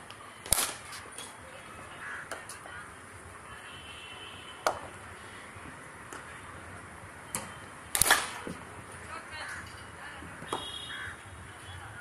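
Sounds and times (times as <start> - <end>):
cricket bat cracking ball: 4.6 - 5.0, 7.4 - 8.7.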